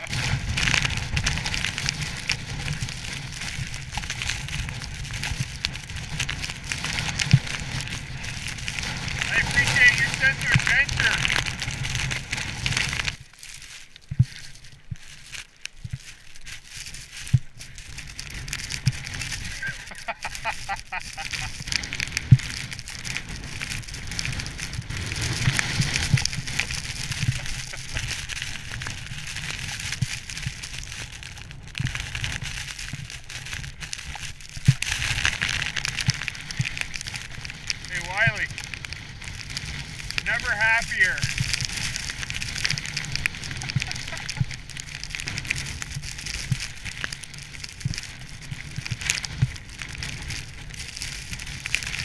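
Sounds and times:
skis scraping through snow: 0:00.0 - 0:52.0.

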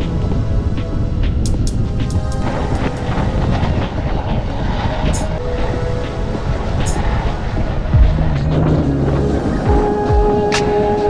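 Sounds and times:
background music: 0:00.0 - 0:11.0
road noise: 0:00.0 - 0:11.0
wind rushing: 0:00.0 - 0:11.0.

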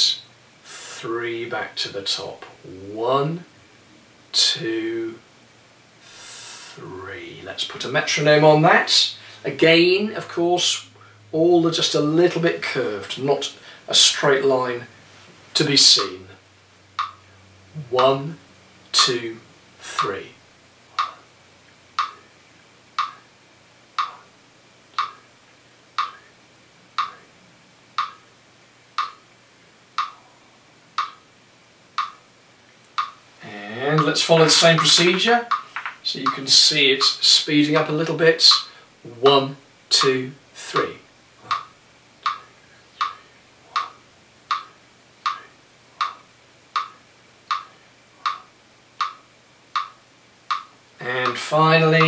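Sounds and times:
metronome clicking: 0:17.0 - 0:17.2, 0:19.9 - 0:20.2, 0:21.0 - 0:21.2, 0:22.0 - 0:22.2, 0:23.0 - 0:23.2, 0:24.0 - 0:24.2, 0:25.0 - 0:25.2, 0:26.0 - 0:26.2, 0:27.0 - 0:27.2, 0:28.0 - 0:28.2, 0:29.0 - 0:29.2, 0:30.0 - 0:30.2, 0:31.0 - 0:31.2, 0:32.0 - 0:32.2, 0:32.8 - 0:33.2, 0:34.0 - 0:37.2, 0:41.5 - 0:43.2, 0:43.8 - 0:45.4, 0:46.0 - 0:48.4, 0:49.0 - 0:52.0.

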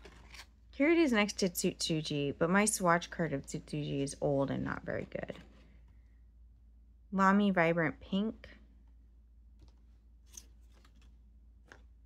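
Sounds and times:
stiff paper cards rustling: 0:00.0 - 0:00.6, 0:09.6 - 0:12.0.

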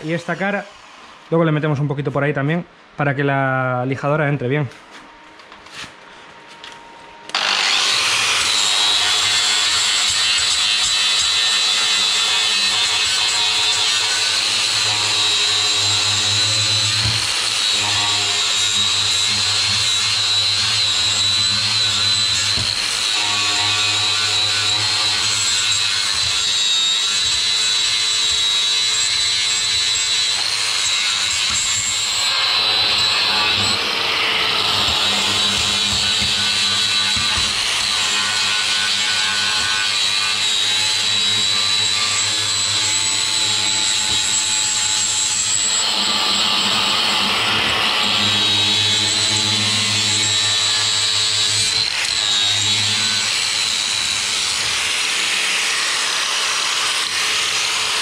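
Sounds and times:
angle grinder sanding steel: 0:07.3 - 0:58.0.

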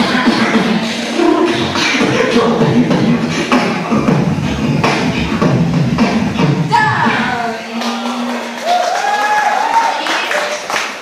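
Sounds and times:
beatboxing through microphone: 0:00.0 - 0:08.6.

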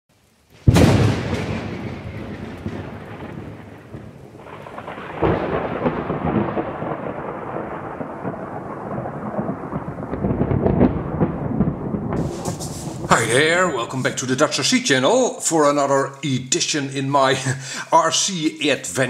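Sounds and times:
rain hiss: 0:00.1 - 0:10.9, 0:12.1 - 0:19.0
thunder crack: 0:00.6 - 0:15.2
thunder rumbling: 0:00.6 - 0:15.5.

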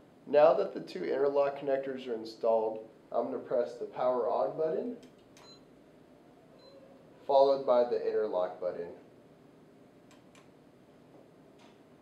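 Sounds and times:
faint high beeps: 0:05.4 - 0:05.7, 0:06.6 - 0:07.0.

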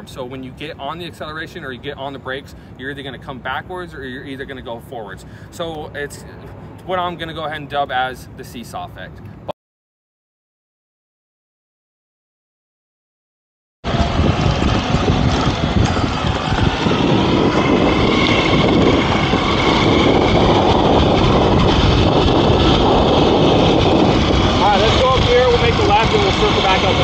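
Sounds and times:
wind rush on microphone: 0:13.8 - 0:27.0.

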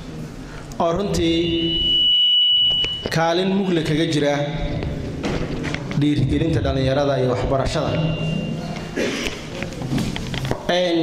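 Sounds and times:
high-pitched microphone feedback whistle: 0:01.2 - 0:03.8, 0:07.8 - 0:08.8.

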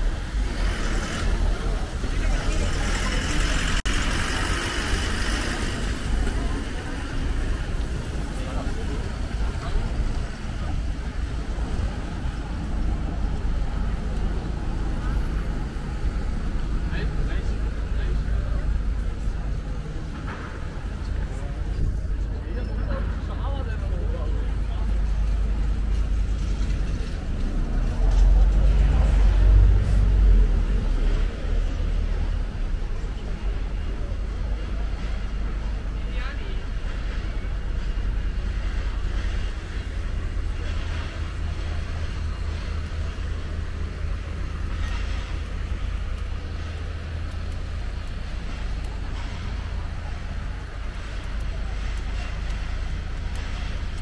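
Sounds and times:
people talking: 0:00.0 - 0:15.5, 0:16.8 - 0:26.2, 0:26.9 - 0:54.0
road traffic passing: 0:00.0 - 0:54.0.

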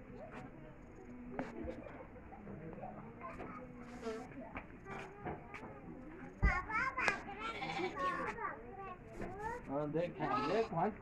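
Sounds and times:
sheep bleating: 0:07.5 - 0:08.2, 0:10.2 - 0:10.8.

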